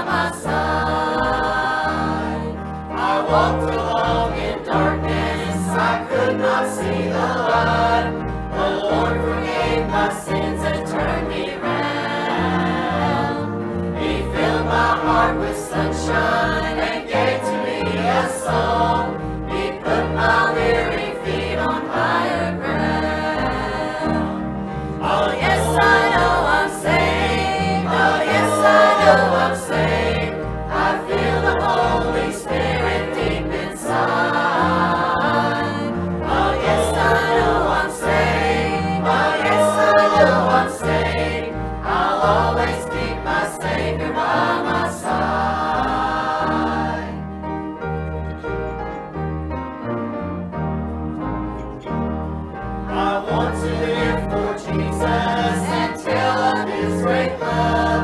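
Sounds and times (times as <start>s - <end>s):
choir singing a hymn: 0.0s - 47.6s, 51.7s - 58.0s
instrumental accompaniment: 0.0s - 58.0s.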